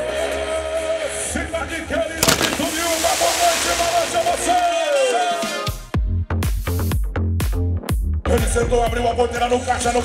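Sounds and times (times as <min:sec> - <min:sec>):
music: 0:00.0 - 0:02.7, 0:03.6 - 0:10.0
pyrotechnic bang: 0:02.2 - 0:04.9
loud pyrotechnic hiss: 0:02.2 - 0:05.2.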